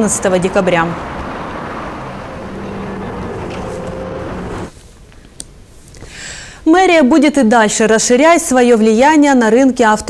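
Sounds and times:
traffic rumble: 0.0s - 5.9s.

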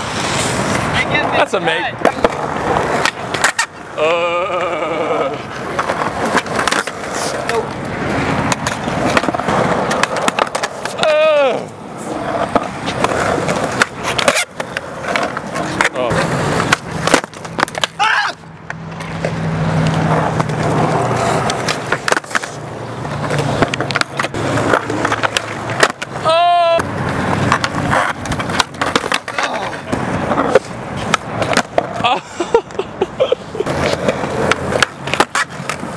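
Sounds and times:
skateboard wheels rolling on concrete: 0.0s - 35.9s
skateboard clacks: 0.1s - 32.8s, 33.6s - 35.9s
person yelling: 11.0s - 11.7s, 17.9s - 18.4s, 26.2s - 26.9s.

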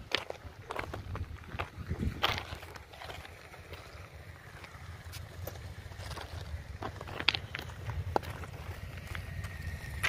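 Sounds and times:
wind rumble on microphone: 0.0s - 3.2s
footsteps on gravel: 0.0s - 10.0s.

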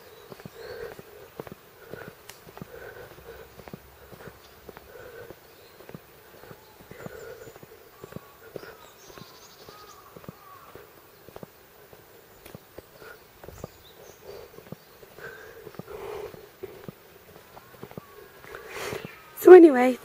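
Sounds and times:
faint outdoor chirping: 0.0s - 20.0s
footsteps on wet pavement: 0.0s - 20.0s.

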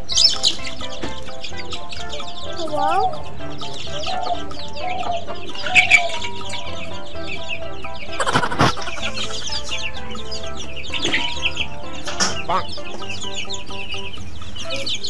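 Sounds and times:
background music: 0.0s - 15.0s
chicken clucking: 0.0s - 15.0s.

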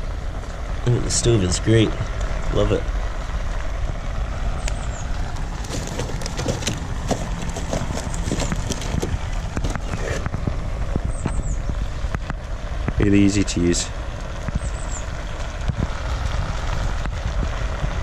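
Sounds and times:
wood fire crackling in a stove: 0.0s - 18.0s.

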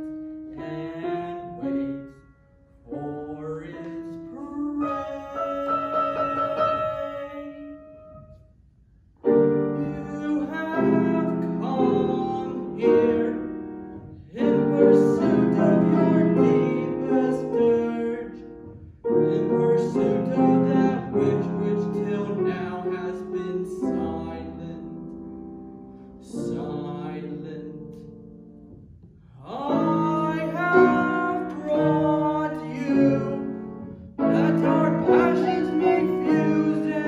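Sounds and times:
grand piano chords: 0.0s - 37.0s.

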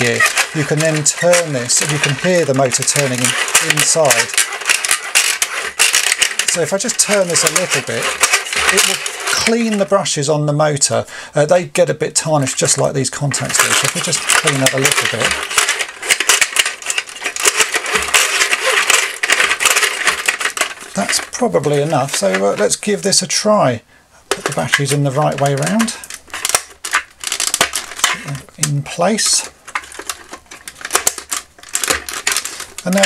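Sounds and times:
plastic toy gears clicking and rattling: 0.0s - 10.0s, 12.4s - 23.2s, 24.3s - 33.0s.

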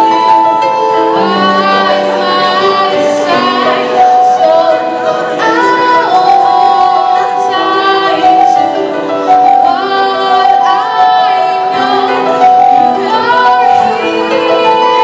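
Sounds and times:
electronic keyboard chords: 0.0s - 15.0s
woman singing pop ballad: 1.1s - 15.0s.

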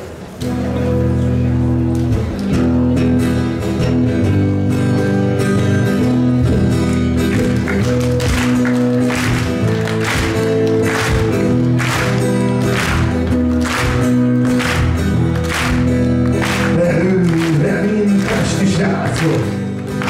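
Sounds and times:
acoustic guitar strumming chords: 0.0s - 20.0s.

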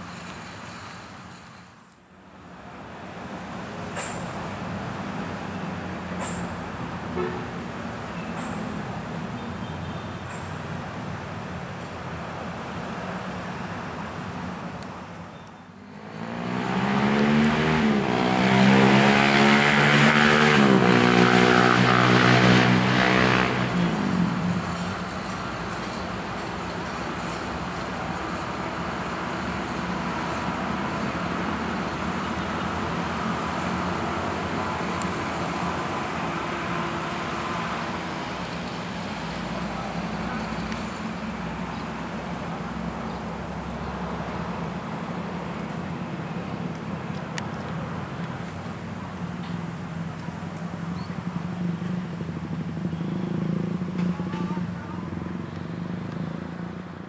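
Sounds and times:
road traffic noise: 0.0s - 57.0s
vehicle engine passing close: 15.8s - 57.0s.

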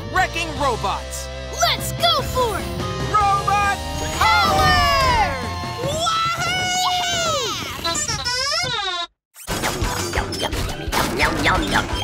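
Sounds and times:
background music: 0.0s - 7.6s
cartoon character shouting: 4.2s - 7.8s.

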